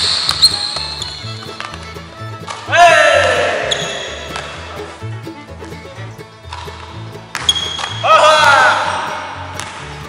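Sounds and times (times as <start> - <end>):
background music: 0.0 - 10.0
man shouting joyfully: 2.7 - 3.8, 8.0 - 9.4.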